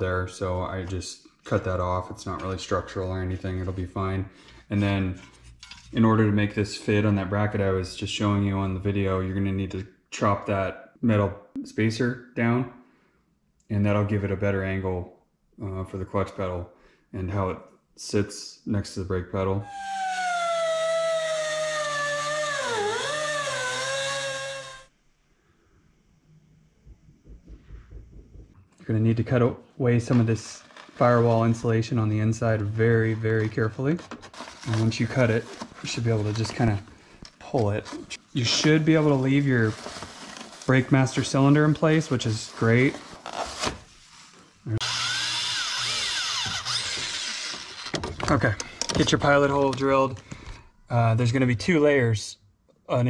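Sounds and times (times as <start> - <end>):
angle grinder cutting metal: 19.7 - 24.9, 44.8 - 47.9
electric drill drilling through steel: 19.7 - 24.9, 44.8 - 47.9.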